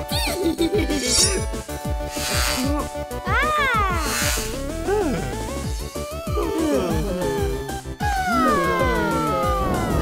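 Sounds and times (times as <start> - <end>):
bouncy cartoon music: 0.0 - 10.0.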